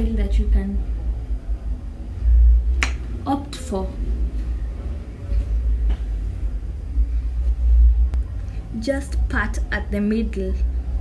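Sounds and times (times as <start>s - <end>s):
low rumbling noise: 0.0s - 11.0s.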